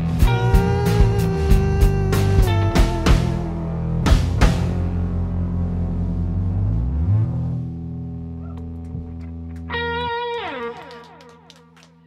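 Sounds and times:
electric guitar note sliding down: 0.0s - 11.6s
low bass notes: 0.0s - 12.0s
electric guitars ringing chord: 7.8s - 11.9s.

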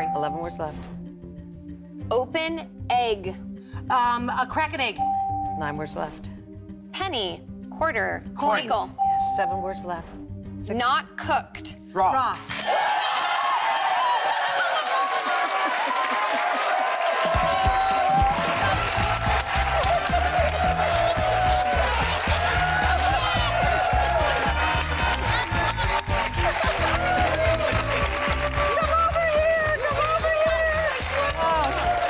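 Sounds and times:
upbeat game-show music: 0.0s - 32.0s
audience cheering and applause: 12.6s - 32.0s
steady bass beat: 18.6s - 31.6s.

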